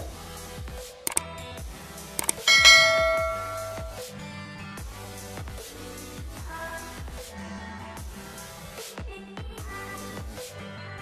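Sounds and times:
quick clicks: 2.2 - 2.6
background music: 2.2 - 4.0
bright bell chime: 2.2 - 4.0.

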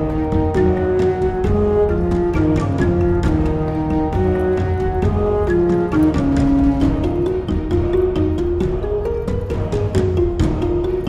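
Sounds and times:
instrumental melody of held notes: 0.0 - 11.0.

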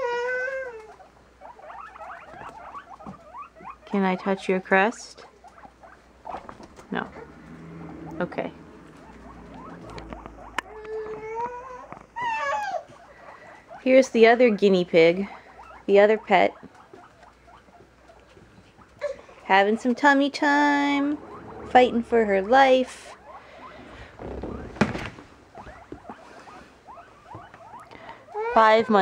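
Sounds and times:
guinea pig high call: 0.0 - 8.2, 8.8 - 24.9, 25.5 - 29.0.

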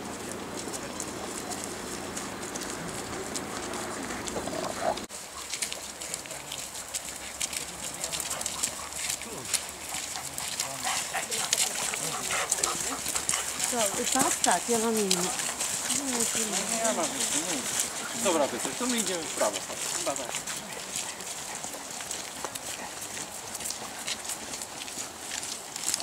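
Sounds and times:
footsteps on wet gravel: 0.0 - 26.0.

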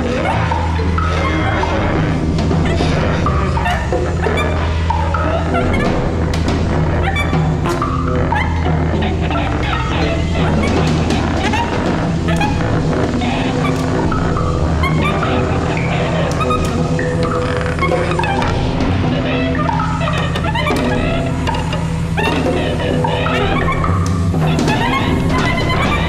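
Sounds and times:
low drone: 0.0 - 26.0.

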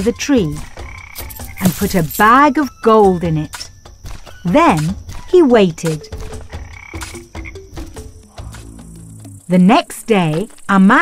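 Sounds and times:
frogs croaking: 0.0 - 11.0.

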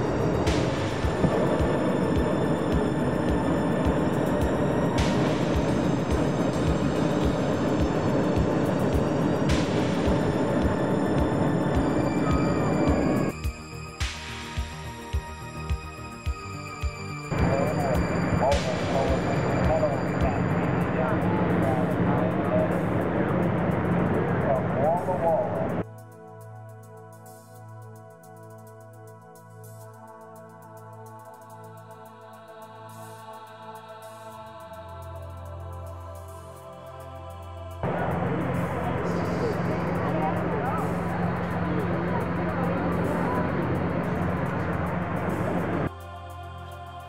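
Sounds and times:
propane burner roaring: 0.0 - 13.4, 17.3 - 25.8, 37.8 - 45.9
steady rumble: 0.0 - 13.8, 14.6 - 25.8, 37.2 - 46.0
low hum: 0.0 - 25.8, 37.6 - 46.0
faint voices: 17.3 - 25.8, 37.8 - 45.9.

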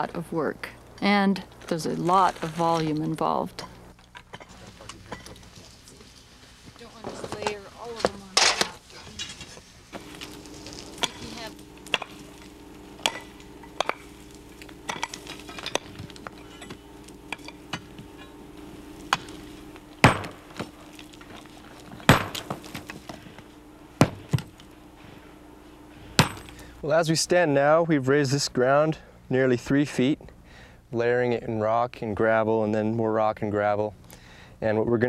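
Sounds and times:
steady low hum: 0.0 - 31.6
pick striking rock and soil: 7.2 - 26.8.

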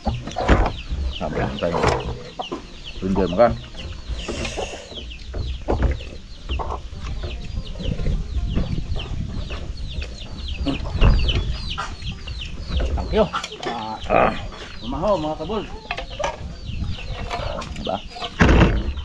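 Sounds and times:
chicks peeping: 0.0 - 19.0.

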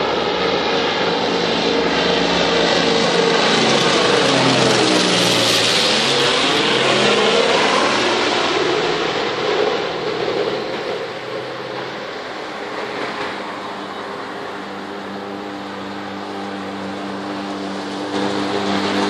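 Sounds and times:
propeller plane flying overhead: 0.0 - 19.0.

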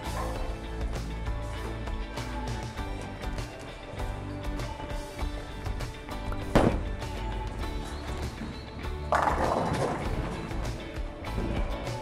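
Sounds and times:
background music: 0.0 - 12.0
bowling pins crashing: 9.1 - 10.6.

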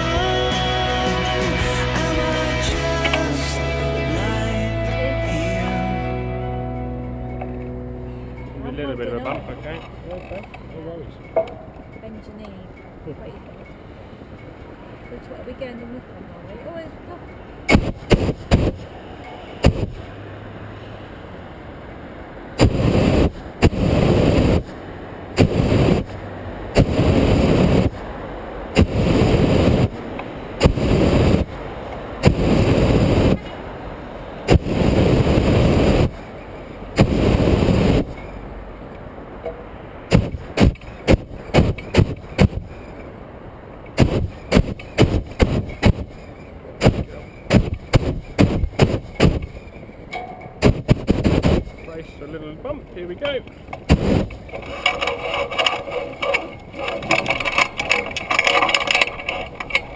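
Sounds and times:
propane burner blasts: 17.6 - 20.1, 22.6 - 31.6, 32.2 - 33.6, 34.4 - 38.3, 39.4 - 43.0, 43.9 - 49.8, 50.6 - 52.1, 53.7 - 59.9
sharp clicks and knocks: 39.4 - 42.7, 46.8 - 51.9, 53.4 - 59.9.

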